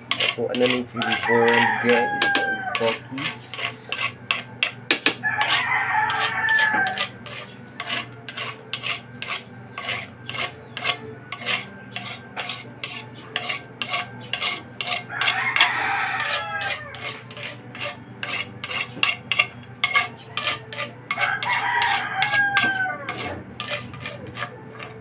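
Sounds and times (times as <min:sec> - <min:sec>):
paddle scraping metal canister: 0:00.0 - 0:04.8, 0:05.4 - 0:25.0
rooster crowing: 0:01.0 - 0:03.9, 0:05.2 - 0:07.2, 0:15.0 - 0:17.2, 0:21.1 - 0:23.4.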